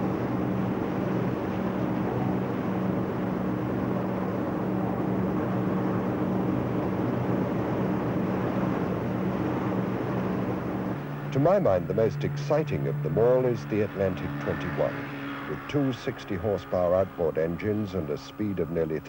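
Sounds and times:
boat engine hum: 0:00.0 - 0:19.0.

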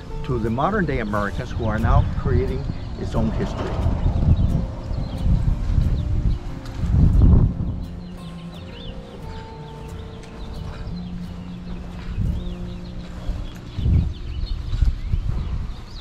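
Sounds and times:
birds chirping: 0:00.0 - 0:16.0
loud low rumbles: 0:01.6 - 0:08.4
steady low hum: 0:02.4 - 0:08.5.

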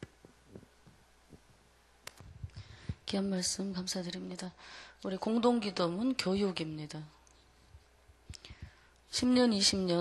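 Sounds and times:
low hum: 0:00.0 - 0:09.9.

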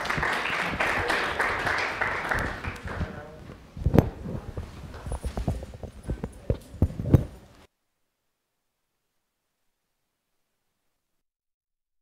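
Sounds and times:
applause: 0:00.0 - 0:03.2
voices: 0:00.0 - 0:07.1.

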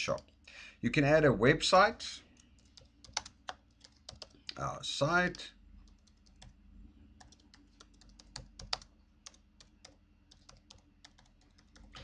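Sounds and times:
keyboard keystrokes: 0:07.2 - 0:12.0.

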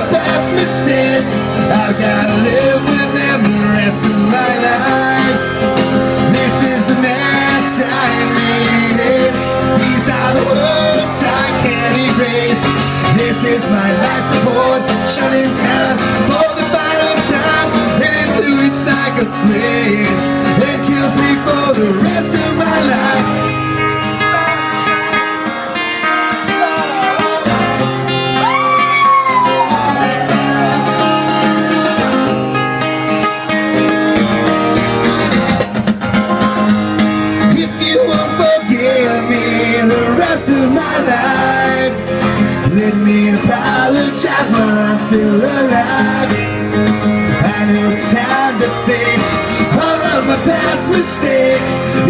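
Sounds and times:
person singing: 0:00.0 - 0:33.3, 0:37.4 - 0:52.0
acoustic guitar strumming: 0:00.0 - 0:52.0.

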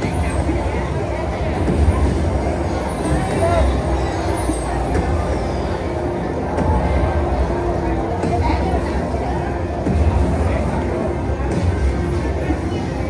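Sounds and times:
casino chatter: 0:00.0 - 0:13.0.

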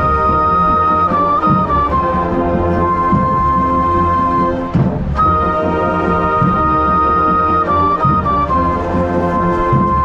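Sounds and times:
marching band playing: 0:00.0 - 0:10.0.

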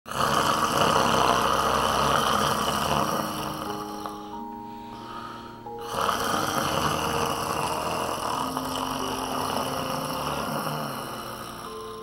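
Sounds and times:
man snoring loudly: 0:00.1 - 0:04.5, 0:05.1 - 0:12.0
soft music notes: 0:00.1 - 0:12.0.

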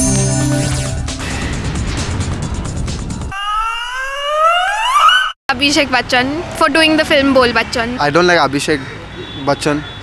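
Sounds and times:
rising electronic tone: 0:03.3 - 0:05.4.

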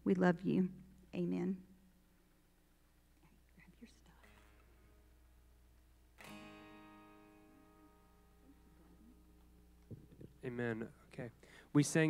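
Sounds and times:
faint whispering voices: 0:03.1 - 0:04.6.

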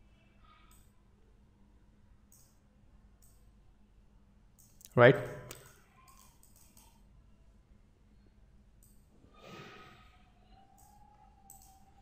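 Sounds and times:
soft breath: 0:09.2 - 0:11.4.

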